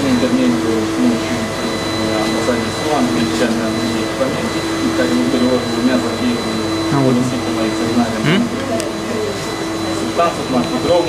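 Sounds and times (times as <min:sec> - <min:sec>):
man's voice: 0:06.9 - 0:08.6.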